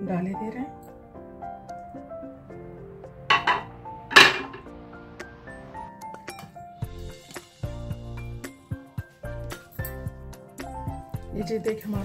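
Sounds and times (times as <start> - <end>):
soft background music: 0.0 - 12.0
spoon clattering on glass bowl: 3.3 - 4.6.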